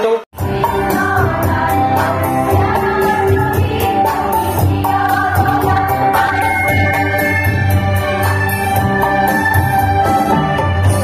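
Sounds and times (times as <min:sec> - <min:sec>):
women's choir singing: 0:00.4 - 0:07.4
pulsing bass: 0:00.4 - 0:11.0.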